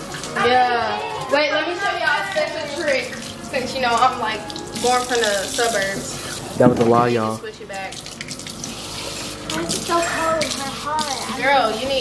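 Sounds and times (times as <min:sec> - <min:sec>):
faucet running into sink: 0:00.0 - 0:12.0.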